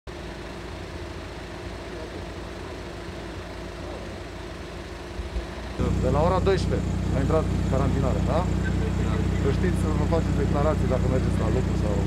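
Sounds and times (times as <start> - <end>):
car engine idling: 0.1 - 12.0
street traffic noise: 0.1 - 12.0
man speaking: 5.8 - 12.0.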